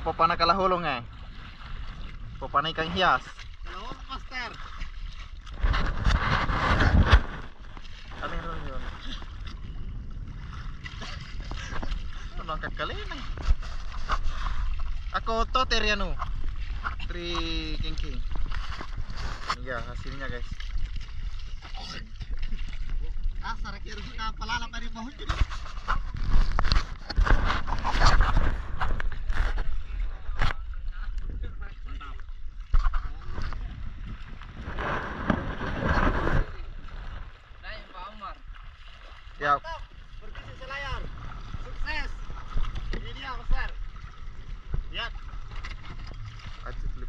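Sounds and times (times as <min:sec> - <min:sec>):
seawater splashing and sloshing: 0:00.0 - 0:47.0
rubbing and knocking: 0:05.6 - 0:07.6
wind buffeting microphone: 0:05.6 - 0:21.6, 0:22.2 - 0:37.5.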